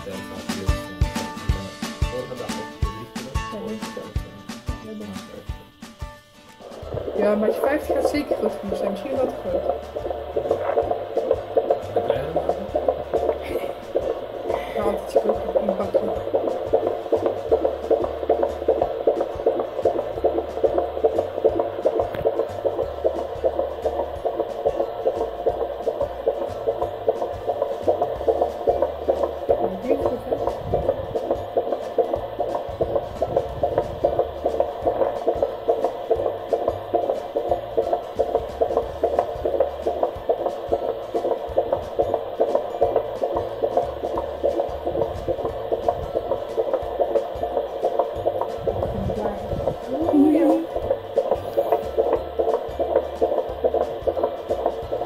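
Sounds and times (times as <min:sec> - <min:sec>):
fetal heartbeat through doppler speaker: 0:06.6 - 0:55.0.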